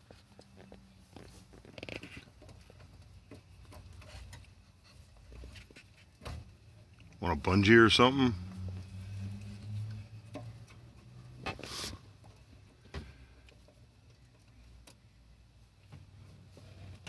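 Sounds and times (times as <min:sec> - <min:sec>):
short metal scrape: 0:11.5 - 0:12.1.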